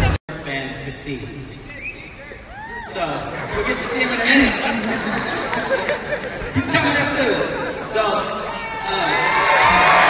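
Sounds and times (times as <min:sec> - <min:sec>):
man speaking over public address: 0:00.0 - 0:10.0
audience chatter: 0:02.2 - 0:10.0.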